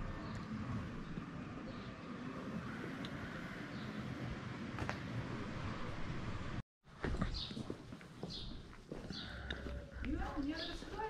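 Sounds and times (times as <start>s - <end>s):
footsteps on cobblestones: 6.9s - 11.0s.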